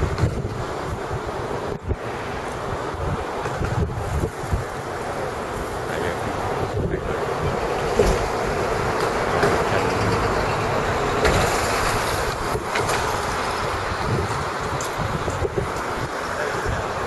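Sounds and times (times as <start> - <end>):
wind buffeting microphone: 0.0 - 17.0.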